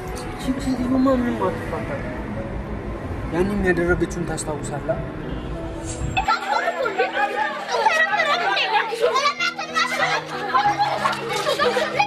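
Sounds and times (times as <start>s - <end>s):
background music with held notes: 0.0s - 3.1s, 5.5s - 12.0s
children shouting while playing: 6.4s - 12.0s.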